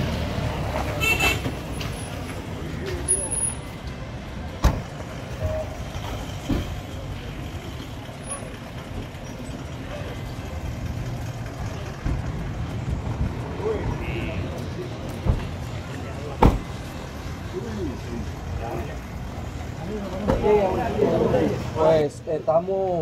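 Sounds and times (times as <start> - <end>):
engine idling: 4.3 - 20.2.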